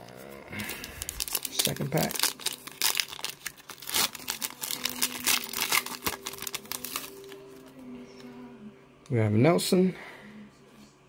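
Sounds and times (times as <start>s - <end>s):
plastic wrapper crackling: 0.6s - 7.4s.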